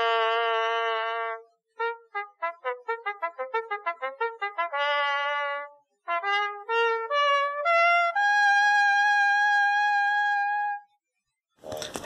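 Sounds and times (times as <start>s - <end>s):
high brass note: 0.0s - 10.9s.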